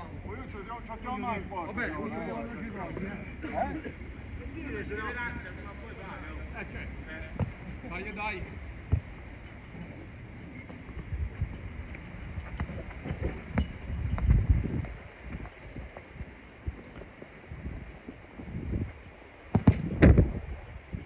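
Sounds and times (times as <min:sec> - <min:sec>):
football being kicked: 0:07.4 - 0:07.6, 0:19.5 - 0:20.3
wind buffeting microphone: 0:08.6 - 0:21.0.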